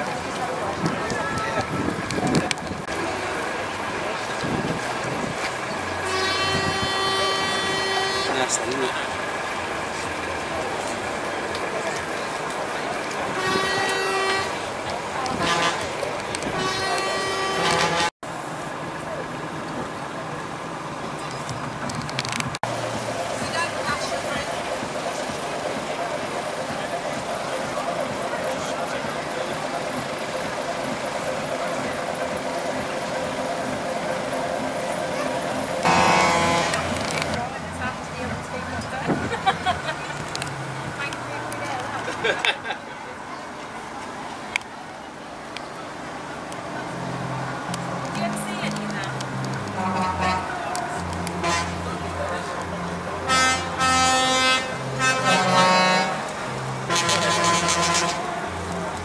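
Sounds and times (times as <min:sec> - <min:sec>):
people talking: 0:00.0 - 0:21.6, 0:23.0 - 0:59.0
people chattering: 0:00.0 - 0:59.0
vehicle horn blasts: 0:06.0 - 0:08.9, 0:13.3 - 0:14.7, 0:15.3 - 0:18.1, 0:35.8 - 0:37.0, 0:49.7 - 0:50.6, 0:51.4 - 0:51.9, 0:53.3 - 0:56.3, 0:56.9 - 0:58.3.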